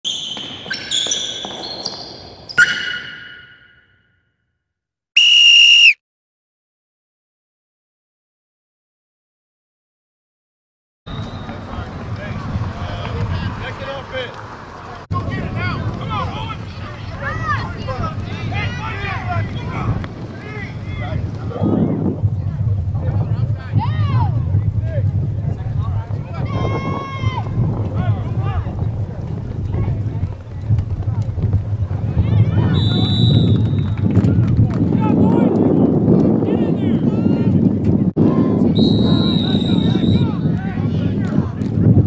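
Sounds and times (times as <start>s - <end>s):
loud whistle blast: 2.6s - 4.1s, 5.2s - 6.0s, 32.8s - 34.0s, 38.8s - 40.3s
wind rumbling on microphone: 11.1s - 42.0s.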